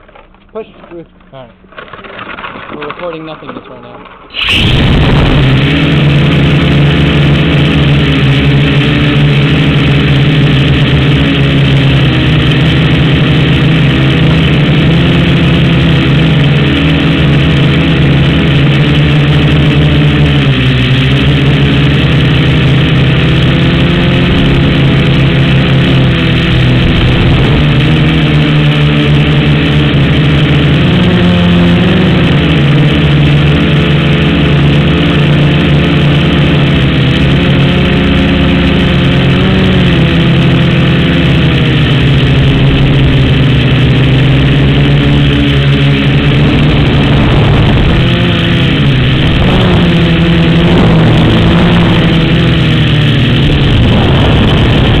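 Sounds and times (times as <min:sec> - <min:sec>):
quadcopter motors and propellers: 0:00.0 - 0:55.0.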